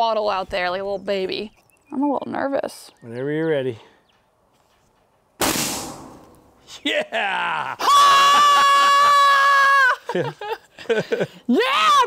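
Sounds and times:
woman screaming high-pitched: 0:07.8 - 0:10.0, 0:11.5 - 0:12.0.

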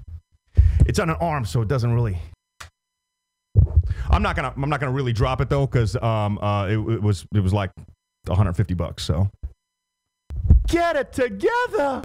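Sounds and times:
man speaking into a microphone: 0:00.8 - 0:02.3, 0:04.0 - 0:09.3, 0:10.7 - 0:12.0.

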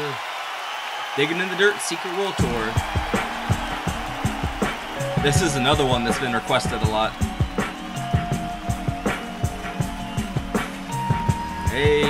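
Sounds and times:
drum kit groove: 0:02.4 - 0:12.0.

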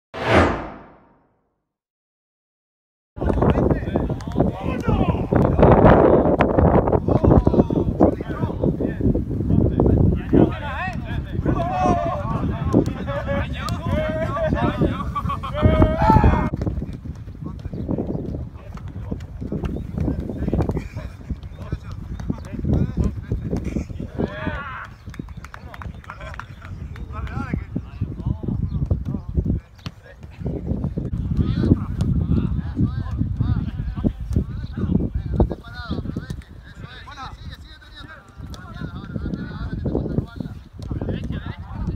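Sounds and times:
whoosh with falling pitch: 0:00.2 - 0:01.2.

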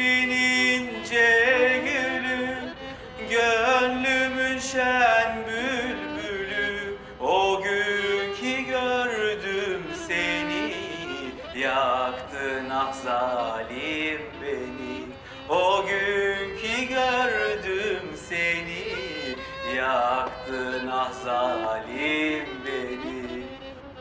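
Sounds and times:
man singing into a microphone: 0:00.0 - 0:23.7.

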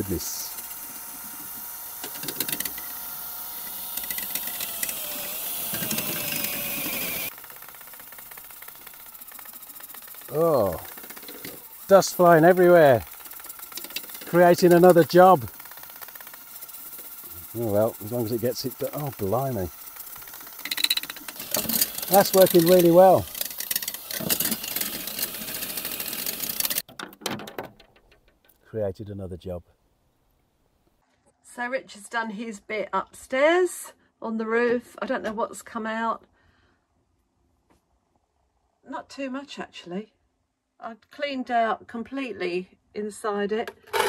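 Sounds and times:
cordless drill whine: 0:00.0 - 0:26.8
brush rattling inside pipe: 0:00.0 - 0:28.6.

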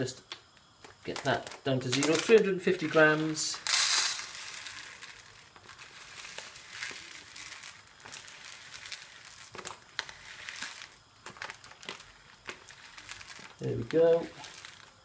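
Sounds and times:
grains ticking on plastic tub: 0:00.1 - 0:15.0
dry rice grains trickling: 0:00.7 - 0:15.0
bag crinkling: 0:00.8 - 0:15.0.

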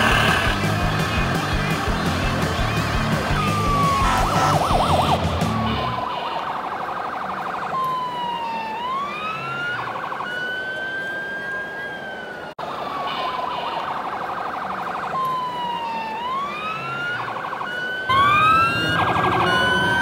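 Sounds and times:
electronic siren wailing: 0:03.3 - 0:20.0.

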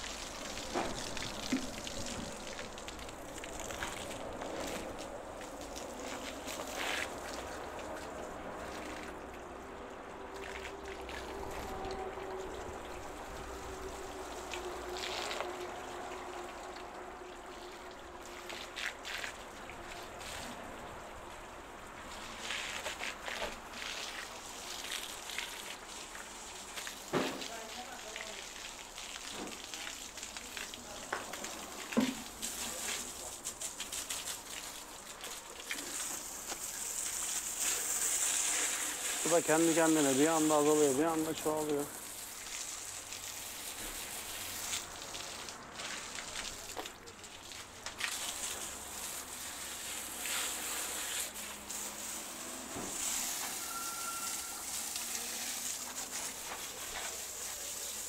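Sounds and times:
hose water jet hissing on metal: 0:00.0 - 0:09.1, 0:18.2 - 0:58.0
water splattering on pavement: 0:00.0 - 0:58.0.

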